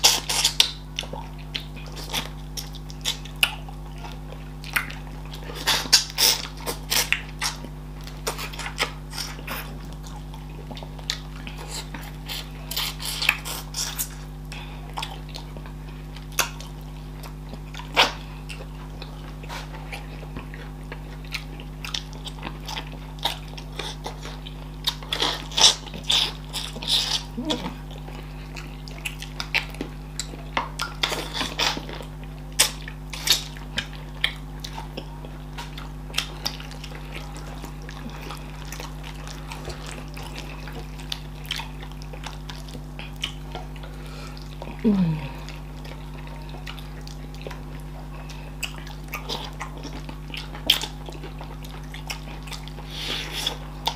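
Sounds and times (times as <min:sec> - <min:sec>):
chewing and wet mouth sounds: 0:00.0 - 0:53.9
low steady hum: 0:00.0 - 0:53.9.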